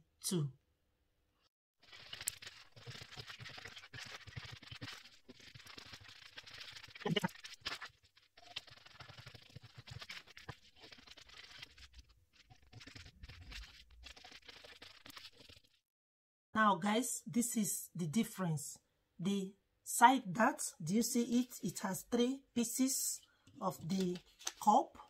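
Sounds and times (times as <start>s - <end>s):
paper rustling: 1.8s - 15.8s, 23.7s - 24.7s.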